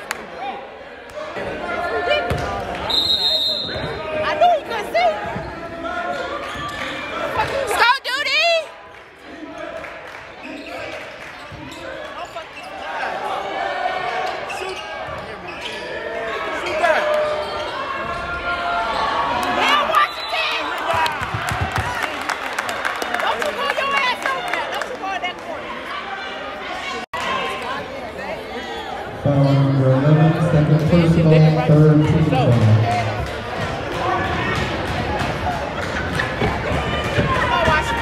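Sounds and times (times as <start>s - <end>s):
voices of players and spectators: 0.0s - 38.0s
sneakers squeaking: 10.4s - 13.0s, 14.2s - 16.3s.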